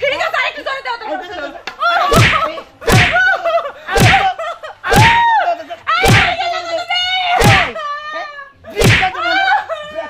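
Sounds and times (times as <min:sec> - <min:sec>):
punch sound effects: 0:02.1 - 0:03.2, 0:04.0 - 0:04.2, 0:04.9 - 0:05.2, 0:06.0 - 0:06.4, 0:07.4 - 0:07.7, 0:08.8 - 0:09.2.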